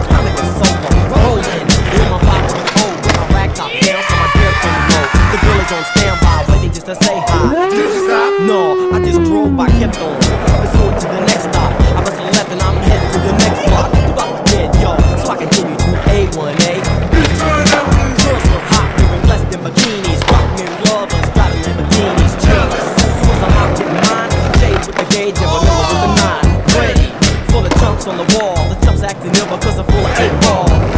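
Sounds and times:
skateboards rolling on hard ground: 0.0s - 7.2s, 9.8s - 30.9s
music with a steady beat: 0.0s - 7.8s, 8.4s - 30.9s
skateboards clacking: 0.0s - 8.7s, 9.7s - 30.9s.

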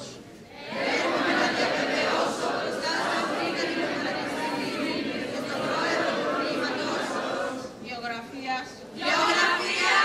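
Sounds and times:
crowd reciting in unison: 0.0s - 7.8s, 8.9s - 10.0s.

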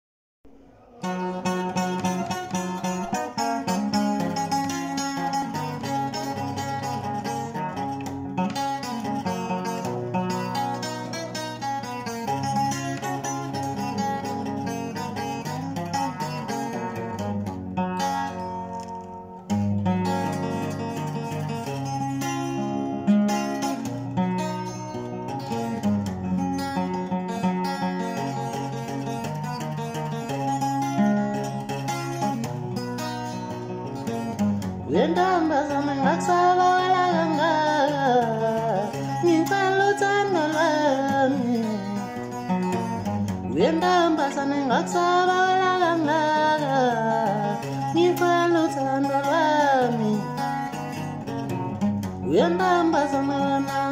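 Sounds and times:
acoustic guitar picking: 0.5s - 53.9s.

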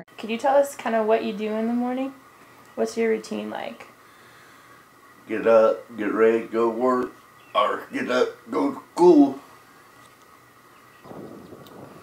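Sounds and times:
faint outdoor background noise: 0.0s - 12.0s.

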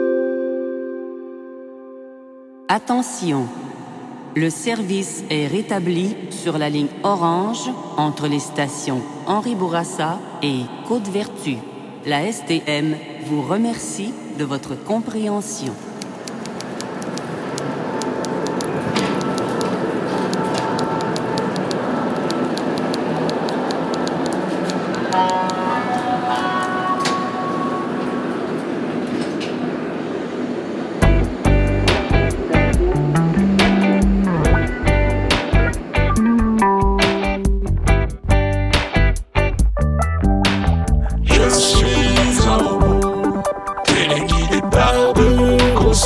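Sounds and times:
subway train running: 5.3s - 38.4s, 41.3s - 46.0s
song with strong beat and bass: 31.0s - 46.0s.

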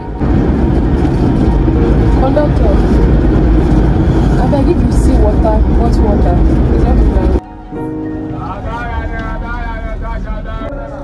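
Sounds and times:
bus engine and road rumble: 0.0s - 11.0s
faint voices: 8.2s - 11.0s.

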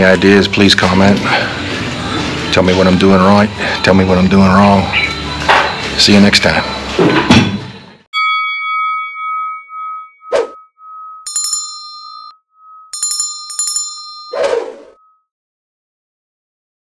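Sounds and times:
rapid bell rings: 8.2s - 15.1s
bell-like ding: 8.2s - 15.2s.

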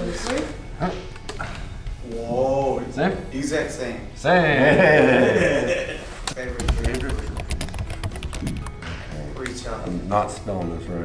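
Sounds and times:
background music: 0.0s - 11.0s
keyboard typing clicks: 6.4s - 8.8s.

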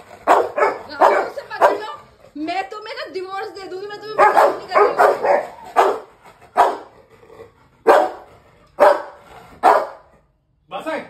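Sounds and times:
dog barking deeply: 0.0s - 2.0s, 4.1s - 7.0s, 7.8s - 10.1s.

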